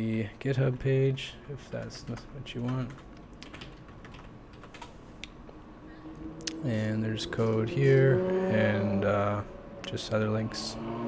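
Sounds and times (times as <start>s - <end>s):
computer keyboard key clicks: 2.6s - 4.9s.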